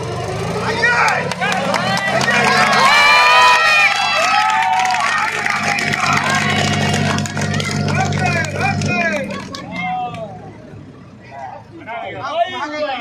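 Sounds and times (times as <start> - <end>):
tractor diesel engine under load: 0.0 - 11.8
crowd shouting: 0.5 - 10.5.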